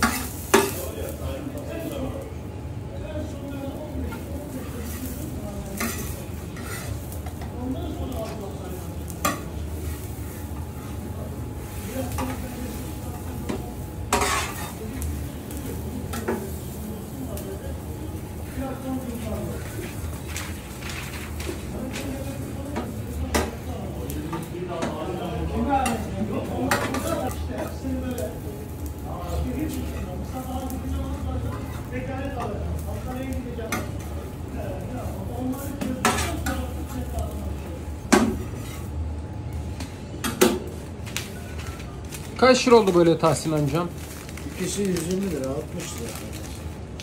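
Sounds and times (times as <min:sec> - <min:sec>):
knife scraping on steel griddle: 0:00.0 - 0:00.8, 0:04.1 - 0:07.4, 0:08.2 - 0:11.0, 0:14.1 - 0:15.1, 0:31.4 - 0:33.1, 0:38.1 - 0:39.0
toast sizzling: 0:00.0 - 0:47.0.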